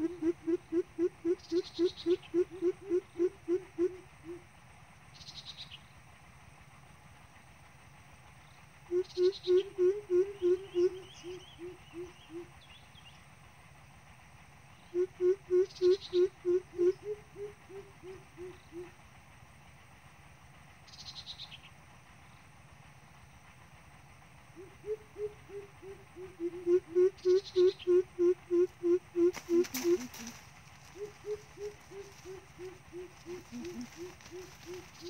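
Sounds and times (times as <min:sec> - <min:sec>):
bird deep hooting: 0:00.0 - 0:04.5, 0:08.8 - 0:12.7, 0:14.8 - 0:19.0, 0:24.5 - 0:35.0.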